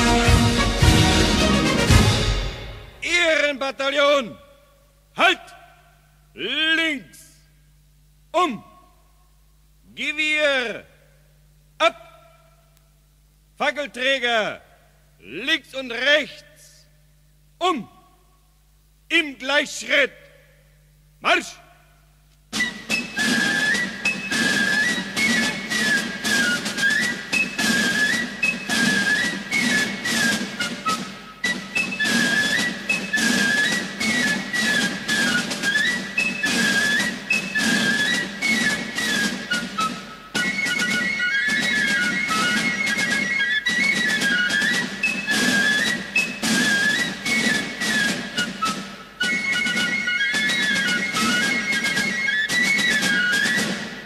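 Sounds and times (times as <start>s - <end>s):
steady drumbeat: 0.0s - 3.1s, 22.5s - 54.0s.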